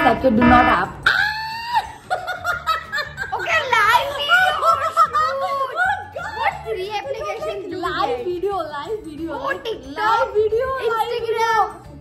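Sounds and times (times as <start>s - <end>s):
women laughing: 1.1s - 6.7s.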